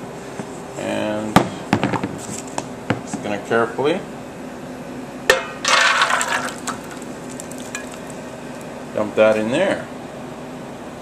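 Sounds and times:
batter splashing into pan: 0:05.6 - 0:08.7.

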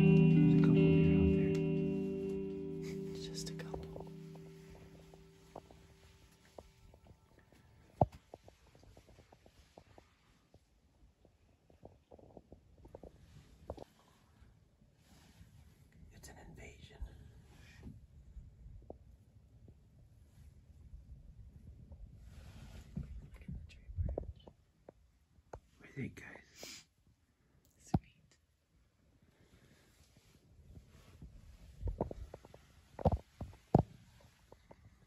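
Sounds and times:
low rumble: 0:00.0 - 0:05.5
hushed whispering: 0:02.8 - 0:05.2, 0:16.1 - 0:17.8, 0:23.2 - 0:24.5, 0:25.8 - 0:26.8, 0:27.7 - 0:28.4.

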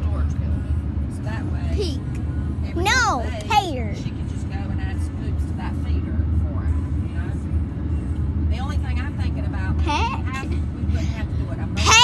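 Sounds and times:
car cabin road and engine rumble: 0:00.0 - 0:12.0
faint voices talking: 0:00.0 - 0:12.0.

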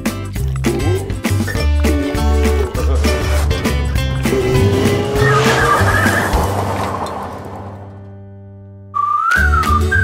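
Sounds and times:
cartoon background music: 0:00.0 - 0:06.5, 0:09.0 - 0:10.0
car pulling away: 0:01.8 - 0:08.3
tyre screech: 0:03.2 - 0:07.8.

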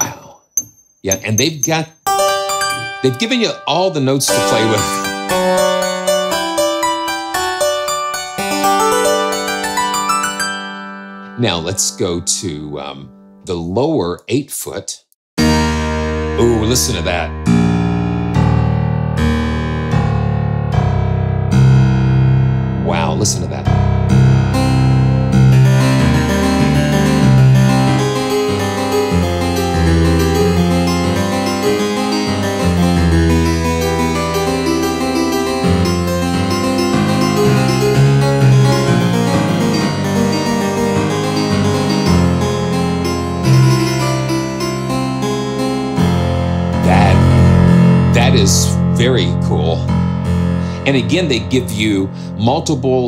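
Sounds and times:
harpsichord playing bass octaves: 0:01.0 - 0:13.9, 0:15.4 - 0:53.0.

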